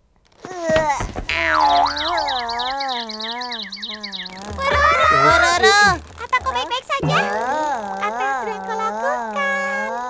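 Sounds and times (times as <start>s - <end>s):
cartoon springy boing: 1.3s - 2.5s, 4.5s - 7.8s
fast high twittering: 1.3s - 8.6s.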